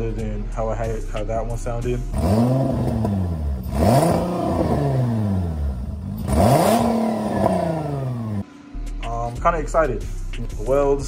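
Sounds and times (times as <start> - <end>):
car engine revving: 0.9 - 9.4.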